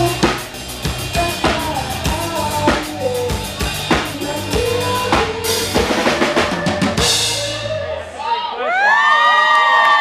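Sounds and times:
audience cheering: 6.5 - 10.0.

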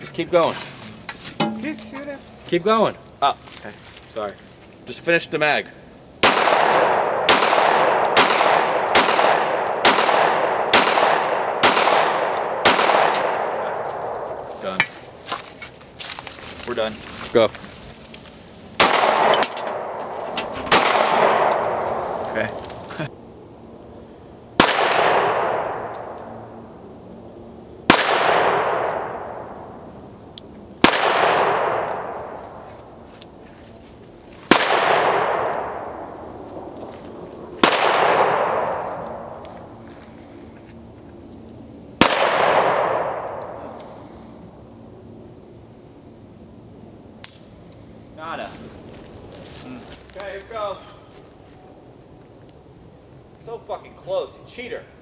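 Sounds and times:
gunshots with long echo: 6.2 - 14.5, 18.8 - 22.5, 24.6 - 26.5, 27.8 - 29.8, 30.8 - 32.6, 34.5 - 36.7, 37.5 - 39.4, 42.0 - 43.8.

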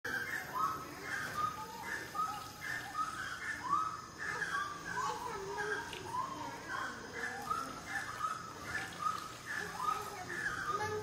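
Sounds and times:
monkeys calling: 0.1 - 11.0.

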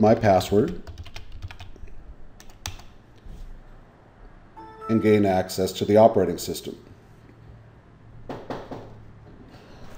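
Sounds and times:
computer keyboard keystrokes: 0.2 - 1.8, 2.4 - 3.0.

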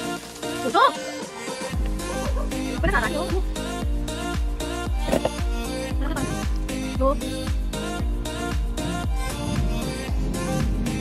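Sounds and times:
pop music with heavy bass beat: 0.0 - 11.0.

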